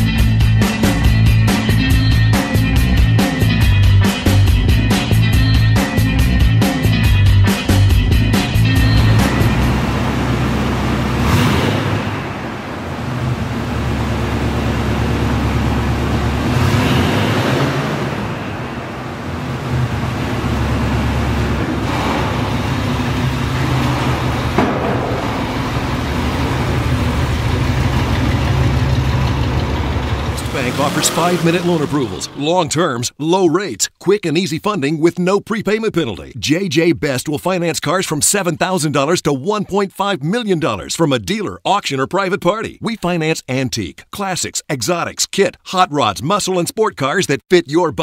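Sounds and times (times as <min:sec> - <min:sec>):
truck engine rumbling: 0:00.0 - 0:34.8
engine revving: 0:08.2 - 0:32.8.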